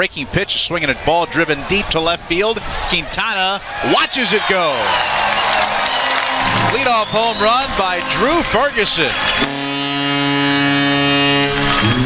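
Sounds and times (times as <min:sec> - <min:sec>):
deep horn blast: 0:06.0 - 0:12.0.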